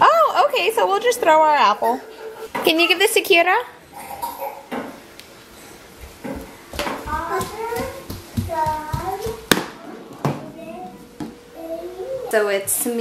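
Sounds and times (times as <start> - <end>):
toddler babbling: 7.0 - 9.5, 10.4 - 12.4.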